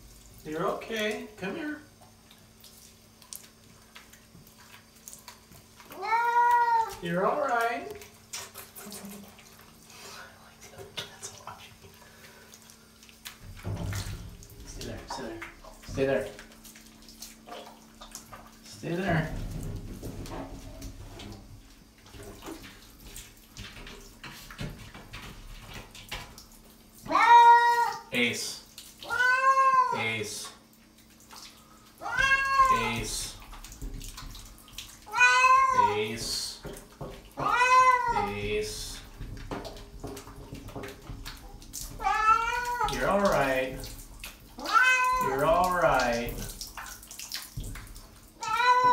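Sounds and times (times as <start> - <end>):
low rushing of shower water: 0.0 - 48.9
water splashing in bathtub: 0.0 - 48.9
cat meowing loudly: 6.0 - 7.0, 27.1 - 28.0, 29.0 - 30.0, 32.0 - 33.2, 35.1 - 36.0, 37.4 - 38.4, 42.0 - 43.0, 44.6 - 45.5, 48.4 - 48.9.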